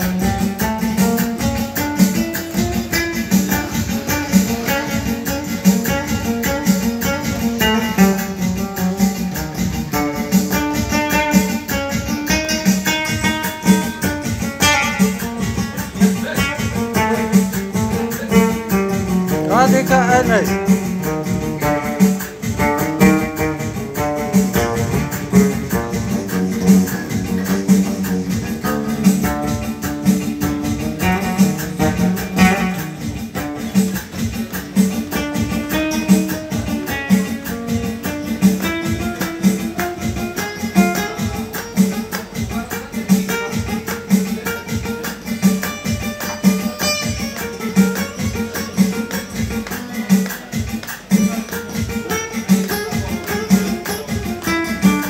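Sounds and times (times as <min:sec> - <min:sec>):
acoustic guitar strumming: 0:00.0 - 0:55.0
man singing: 0:19.4 - 0:20.6.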